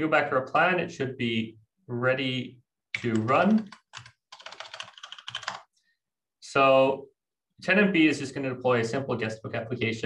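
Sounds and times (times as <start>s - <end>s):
typing on computer keyboard: 3.0s - 5.7s.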